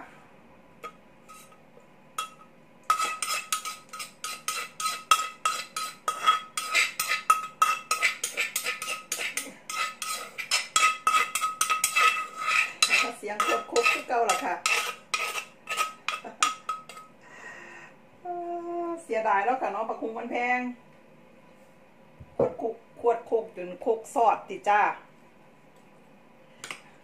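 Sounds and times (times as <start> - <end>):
metal spoon scraping clay mortar: 1.3 - 1.6, 2.2 - 17.1.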